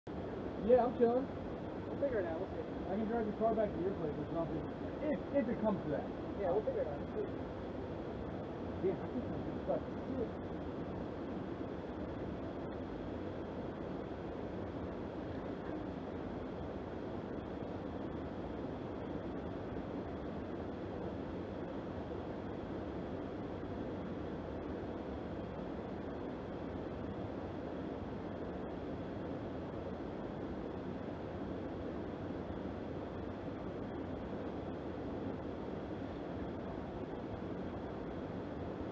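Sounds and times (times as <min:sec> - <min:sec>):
rushing outdoor background noise: 0:00.1 - 0:38.9.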